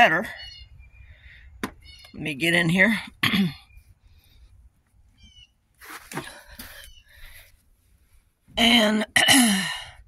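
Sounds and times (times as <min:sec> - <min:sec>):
woman clearing her throat: 0:03.2 - 0:03.6, 0:09.1 - 0:09.9.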